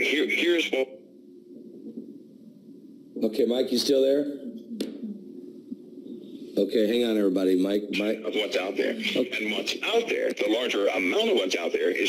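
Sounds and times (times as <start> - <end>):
person speaking on phone line: 7.9 - 12.0.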